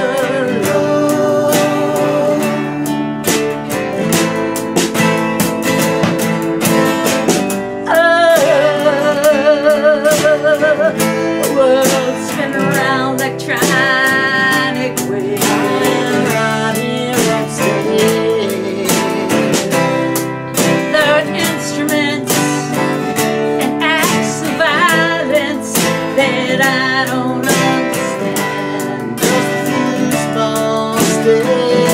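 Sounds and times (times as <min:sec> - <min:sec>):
person singing: 0:00.0 - 0:04.3, 0:05.7 - 0:31.9
acoustic guitars strummed: 0:00.0 - 0:31.9
drum kit and cymbals: 0:00.7 - 0:08.8.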